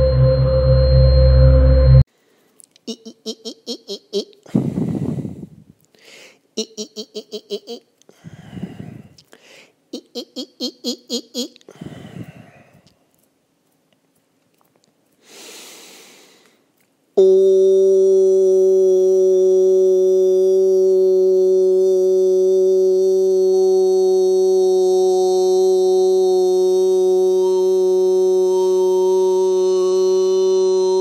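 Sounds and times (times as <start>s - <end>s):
man breathing in: 4.5s - 6.4s, 8.1s - 9.8s, 11.7s - 12.9s, 15.2s - 16.7s
man holding a vocal tone: 17.2s - 31.0s.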